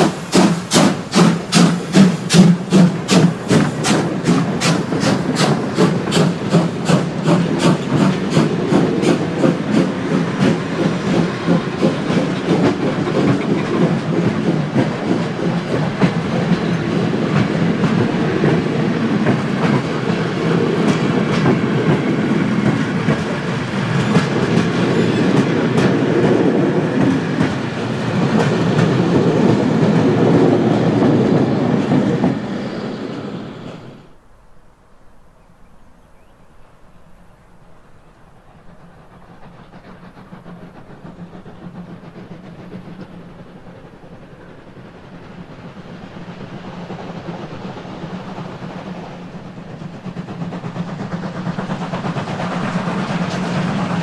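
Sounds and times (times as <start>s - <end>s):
rail joint clicks: 0.0s - 34.2s, 36.2s - 54.0s
steam locomotive exhaust beat: 0.0s - 34.2s, 37.0s - 54.0s
train wheels rumbling on rails: 0.0s - 34.3s, 36.0s - 54.0s.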